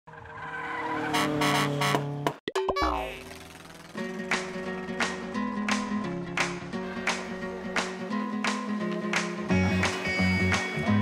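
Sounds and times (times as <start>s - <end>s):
car-like engine tone: 0.1s - 4.1s
music: 3.9s - 11.0s.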